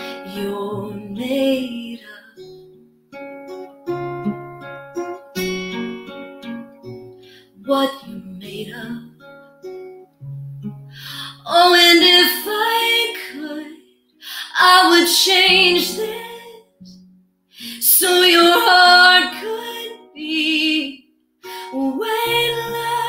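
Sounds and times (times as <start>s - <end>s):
woman singing a slow ballad: 0.0s - 2.6s, 7.6s - 9.1s, 11.0s - 16.9s, 17.6s - 23.0s
acoustic guitar: 0.0s - 23.0s.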